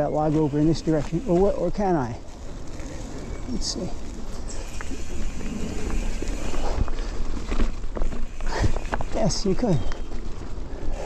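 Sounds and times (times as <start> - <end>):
bike tyres rolling over dirt and rock: 0.0 - 11.0.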